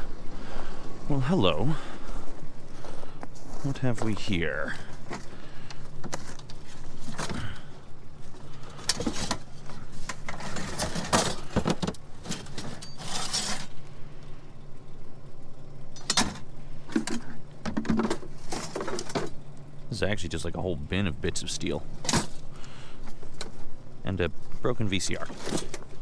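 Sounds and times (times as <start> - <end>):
low hum: 0.0 - 26.0
scrap steel clinking in a tote: 12.2 - 13.8.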